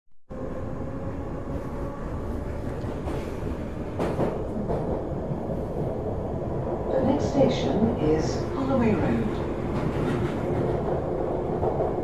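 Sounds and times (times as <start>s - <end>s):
train rumbling: 0.3s - 12.0s.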